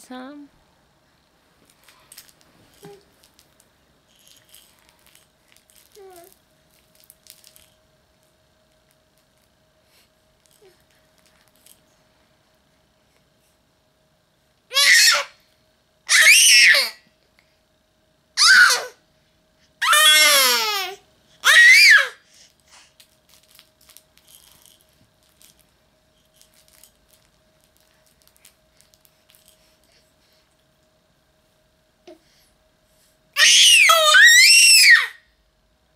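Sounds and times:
baby squealing: 14.7 - 15.3, 16.1 - 17.0, 18.4 - 18.9, 19.8 - 22.2, 33.4 - 35.2.

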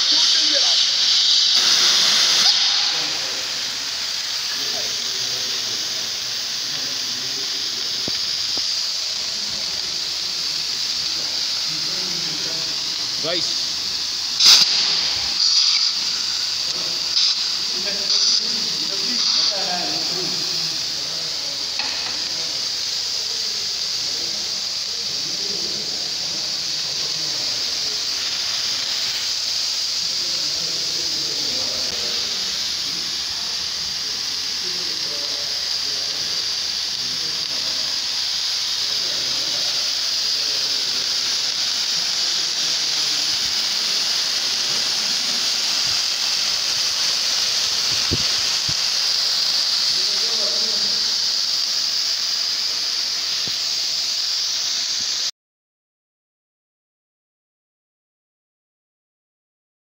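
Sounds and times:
fire extinguisher gas hiss: 0.0 - 55.3.

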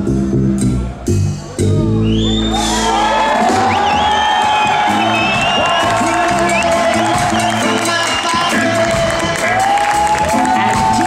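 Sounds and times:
reggae jazz band playing live: 0.0 - 11.0
crowd whooping and cheering: 1.4 - 11.0.

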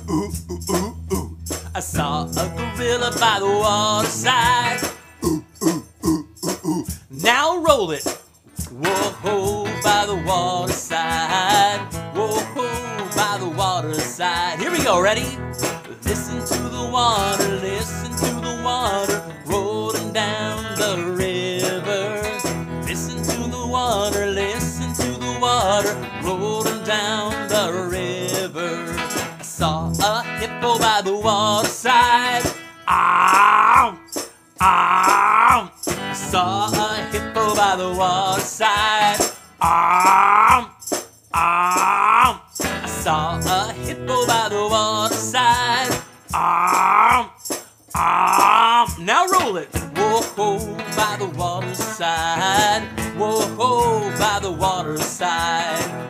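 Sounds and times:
tremolo electric guitar: 0.0 - 6.1, 8.0 - 40.8, 42.2 - 47.2, 48.9 - 56.0
man singing loud calls: 0.0 - 56.0.

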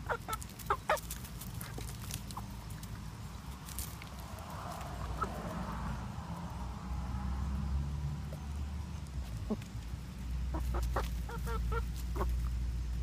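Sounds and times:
hens clucking: 0.0 - 3.1, 5.0 - 5.7, 9.1 - 12.7.

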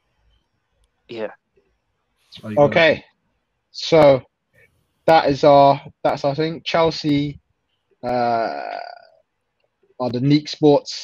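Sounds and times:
man saying uh: 2.4 - 3.0, 5.1 - 7.4, 8.0 - 9.0.

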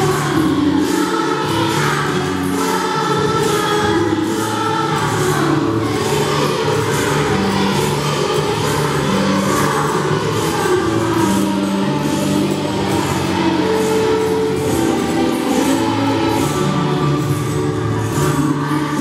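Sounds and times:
children singing a carol: 0.0 - 19.0
musical accompaniment with steady beat: 0.0 - 19.0.

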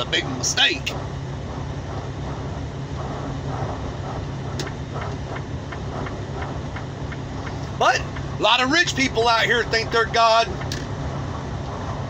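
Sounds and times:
car cabin engine hum: 0.0 - 12.0.

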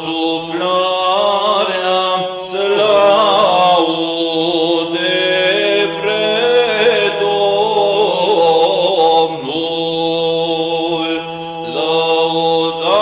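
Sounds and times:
low held vocal drone: 0.0 - 13.0
ornamented vocal chant: 0.0 - 13.0.

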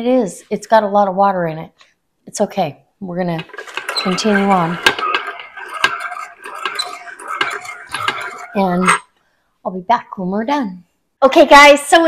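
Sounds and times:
food mill wet metal scraping: 3.4 - 9.0
metal clicks and knocks on pot: 3.4 - 9.0.

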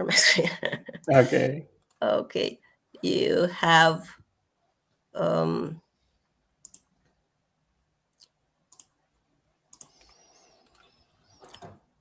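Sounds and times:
computer mouse clicks: 6.6 - 6.9, 8.2 - 9.0, 9.7 - 11.8.

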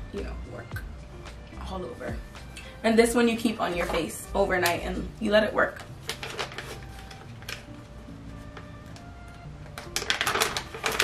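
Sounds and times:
soft background music: 0.0 - 11.0
packaging rustling: 5.8 - 11.0
packaging clicks: 6.0 - 7.8, 8.9 - 11.0.

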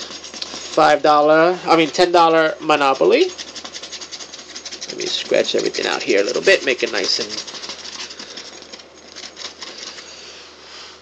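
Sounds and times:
lottery ticket being scratched: 0.0 - 10.2.

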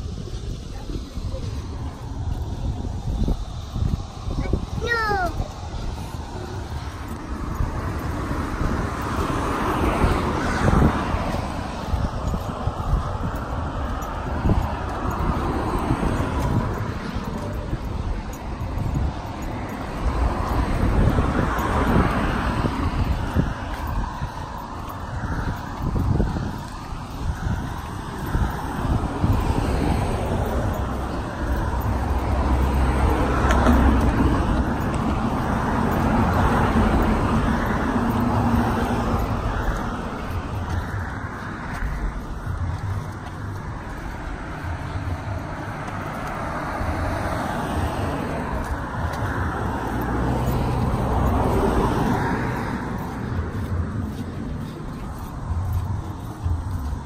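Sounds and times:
cars passing: 0.0 - 57.0.

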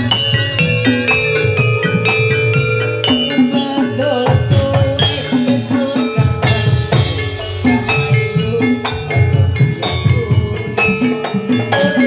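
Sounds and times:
drums struck quickly: 0.0 - 12.0
ringing tuned metal percussion: 0.0 - 12.0.

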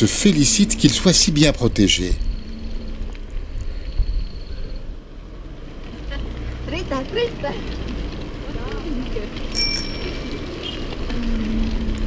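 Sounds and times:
bicycle bell ringing: 9.5 - 10.4.

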